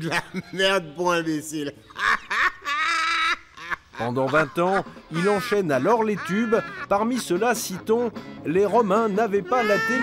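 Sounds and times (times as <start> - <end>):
man laughing loudly: 0.0 - 0.8, 1.7 - 8.1, 9.5 - 10.0.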